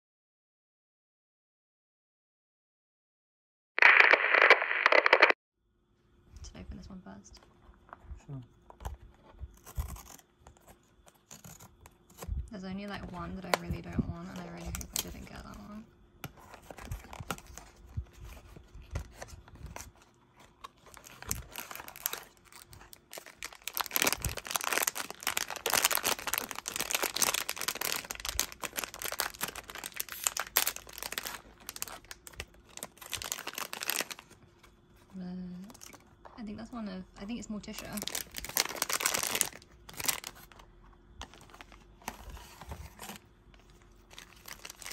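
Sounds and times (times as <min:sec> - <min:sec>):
crackling radio static: 0:03.8 - 0:05.4
foil bag crinkling: 0:16.6 - 0:34.4, 0:37.6 - 0:40.6, 0:41.2 - 0:44.9.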